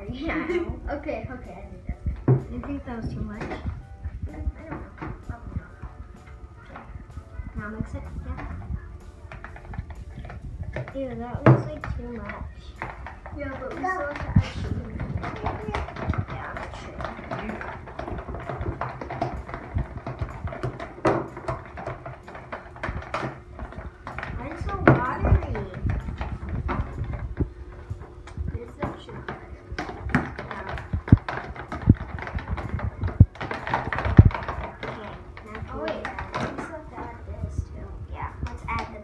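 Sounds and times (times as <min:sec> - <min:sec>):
metal spoons scraping plastic tubs: 0:00.0 - 0:37.6
spoons knocking against tubs: 0:00.0 - 0:39.0.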